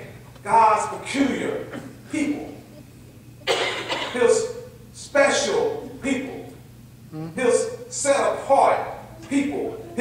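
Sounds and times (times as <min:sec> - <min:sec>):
man preaching: 0:00.0 - 0:02.8, 0:04.0 - 0:06.6, 0:07.4 - 0:10.0.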